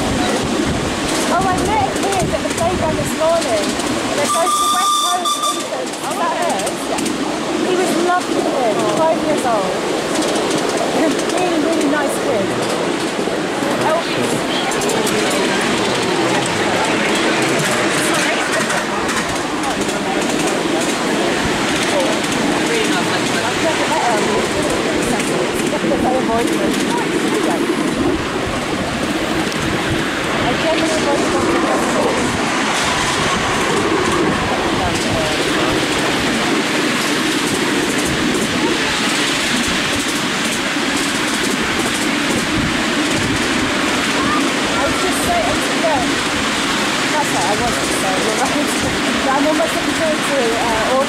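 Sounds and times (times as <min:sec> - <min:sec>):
miniature train running: 0:00.0 - 0:28.2, 0:30.5 - 0:51.0
people's voices: 0:00.0 - 0:51.0.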